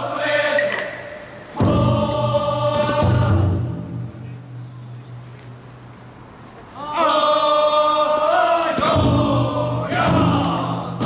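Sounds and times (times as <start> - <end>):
insects trilling: 0.0 - 11.0
men shouting in unison: 6.8 - 11.0.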